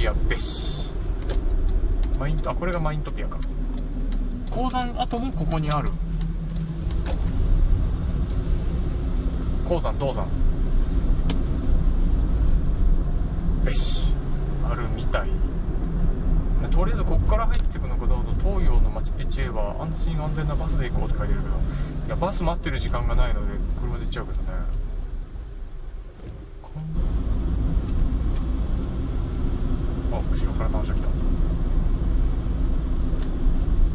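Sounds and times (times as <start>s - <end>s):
car engine and tyre rumble: 0.0s - 33.9s.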